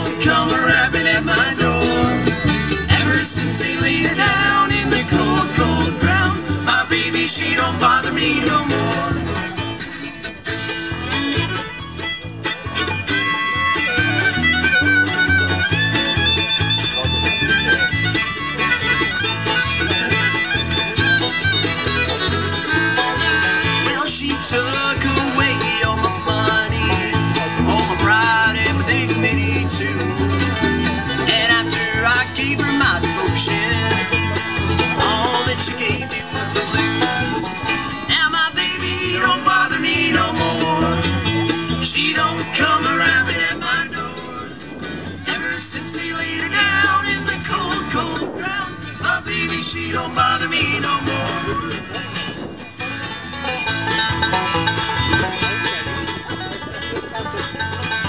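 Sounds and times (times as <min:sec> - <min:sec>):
bluegrass band playing: 0:00.0 - 0:58.0
fiddle melody: 0:00.0 - 0:58.0.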